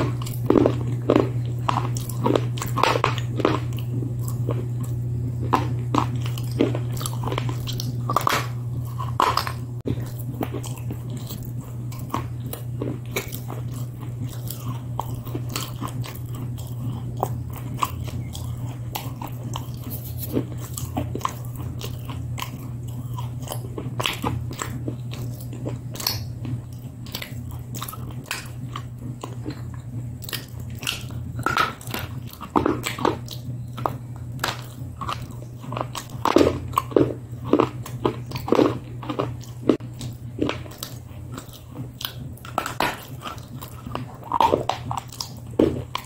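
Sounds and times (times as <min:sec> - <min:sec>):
biting and chewing crunchy sticks: 0:00.0 - 0:46.0
steady low hum: 0:00.0 - 0:46.0.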